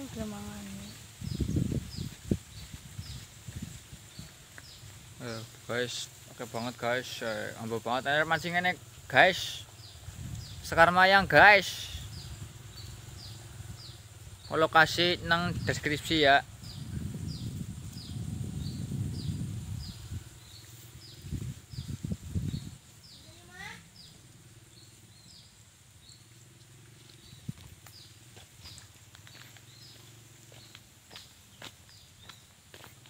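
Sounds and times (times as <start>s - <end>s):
bird chirping: 6.4s - 32.9s
steady low rumble: 12.0s - 23.2s.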